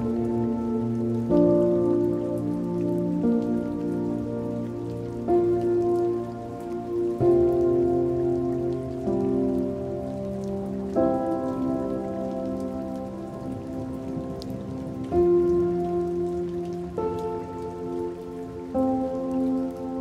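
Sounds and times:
slow sustained music chords: 0:00.0 - 0:20.0
steady patter of rain: 0:00.0 - 0:20.0.

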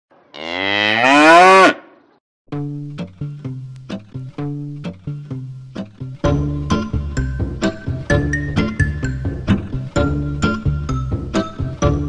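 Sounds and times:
cow mooing: 0:00.3 - 0:02.0.

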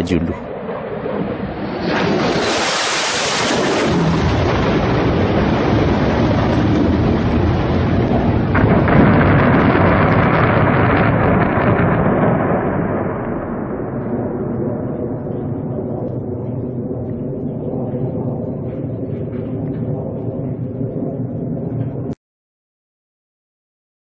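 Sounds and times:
jet aircraft noise: 0:00.0 - 0:09.0, 0:14.6 - 0:22.2
rumble of bomb explosions: 0:03.4 - 0:22.2.

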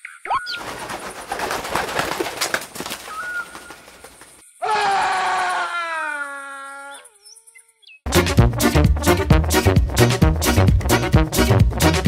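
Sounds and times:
fluttering wings: 0:00.4 - 0:04.5.

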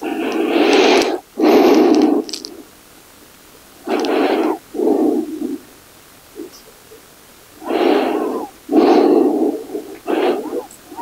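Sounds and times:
woman breathing deeply: 0:03.8 - 0:05.7, 0:07.6 - 0:11.0.

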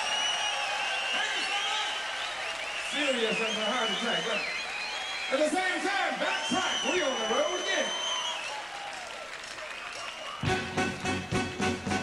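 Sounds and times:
crowd applause and cheering: 0:00.0 - 0:12.0
blues band playing: 0:10.4 - 0:12.0.

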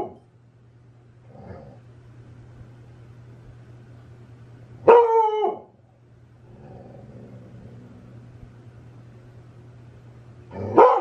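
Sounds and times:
dog barking: 0:04.8 - 0:05.7, 0:10.7 - 0:11.0.

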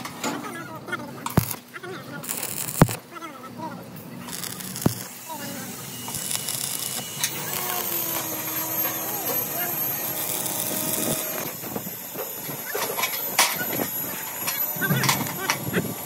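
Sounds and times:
welding arc crackling: 0:01.2 - 0:03.0, 0:04.2 - 0:16.0.

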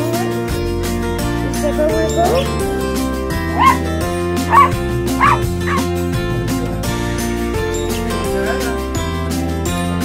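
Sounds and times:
background music: 0:00.0 - 0:10.0
small dog yipping: 0:03.5 - 0:03.8, 0:04.5 - 0:05.9.

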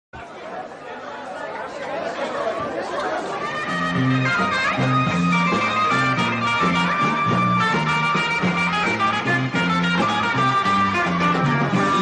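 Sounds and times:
crowd chatter in a hall: 0:00.2 - 0:12.0
band playing with bass notes: 0:03.2 - 0:12.0.

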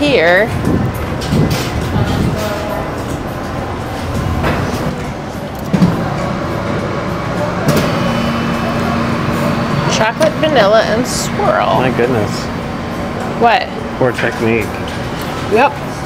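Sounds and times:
machine motor humming: 0:02.7 - 0:16.0.

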